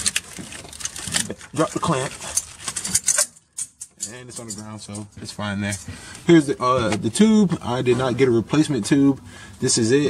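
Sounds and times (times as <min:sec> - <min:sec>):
metal parts clicking and clinking: 0:00.0 - 0:05.9.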